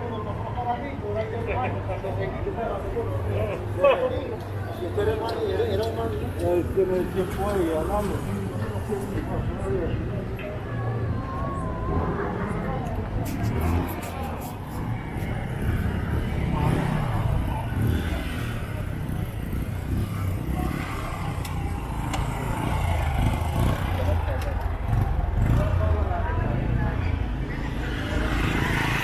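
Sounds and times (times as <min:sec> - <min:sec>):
motorcycles passing: 0:00.0 - 0:29.0
people talking: 0:00.0 - 0:29.0.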